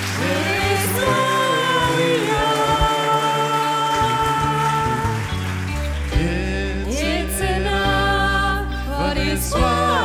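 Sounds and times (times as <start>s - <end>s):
gospel choir and band: 0.0s - 10.0s.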